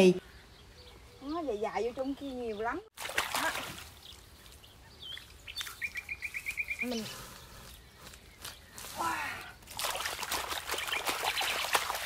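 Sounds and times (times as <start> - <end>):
rustling and splashing in water: 2.9 - 12.0.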